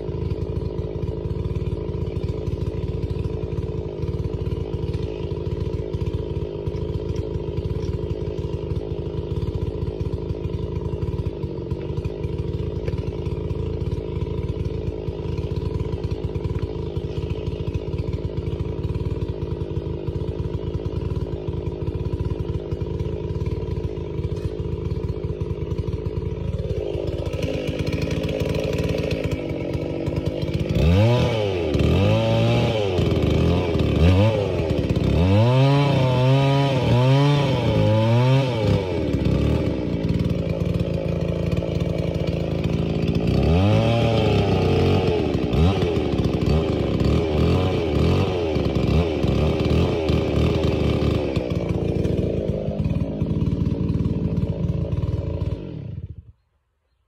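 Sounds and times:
chainsaw cutting log: 0:00.0 - 0:56.5.

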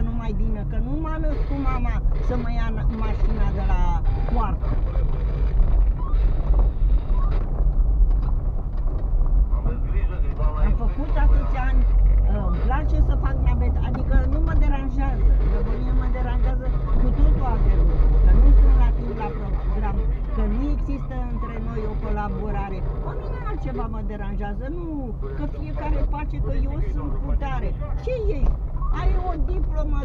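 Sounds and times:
car engine and tyres rumbling: 0:00.0 - 0:30.0.

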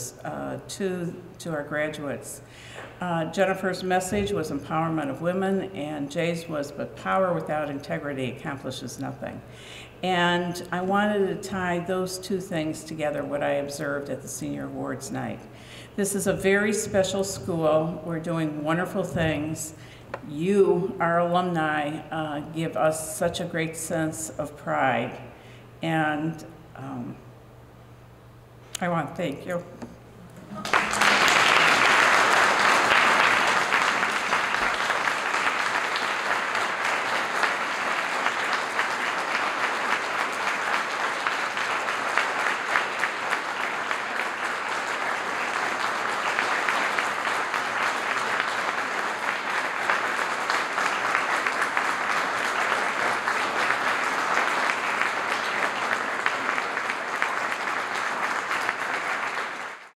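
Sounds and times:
large audience applauding: 0:30.5 - 1:00.0.

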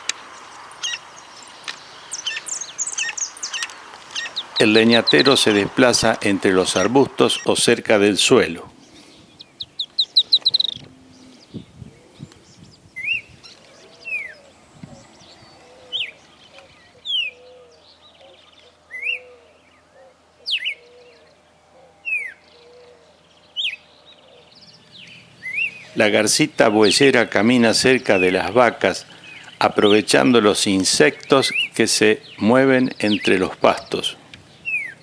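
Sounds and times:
softer lower bird notes: 0:00.0 - 0:35.0.

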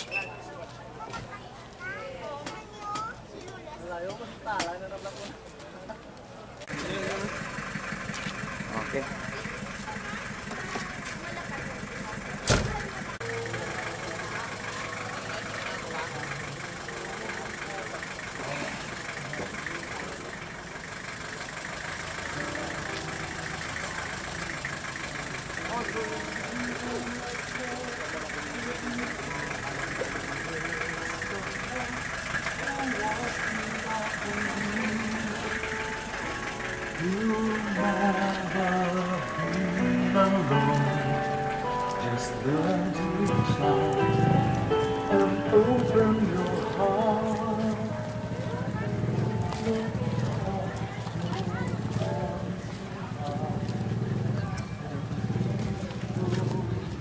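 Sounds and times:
people talking: 0:00.0 - 0:20.9, 0:22.2 - 0:57.0
engine running slowly: 0:05.8 - 0:57.0.

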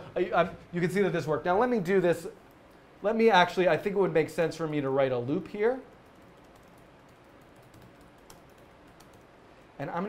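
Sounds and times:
typing on laptop keyboard: 0:05.9 - 0:09.3.

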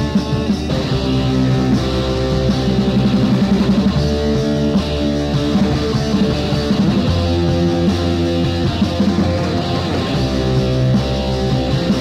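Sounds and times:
electric guitar fast repeated notes: 0:00.0 - 0:12.0
punk rock band: 0:00.0 - 0:12.0.

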